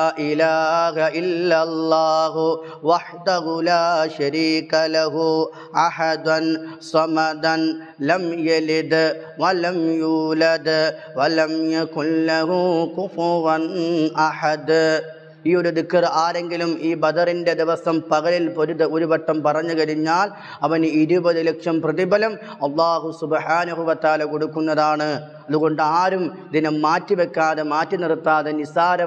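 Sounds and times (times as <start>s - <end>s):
man chanting melodically: 0.0s - 29.0s.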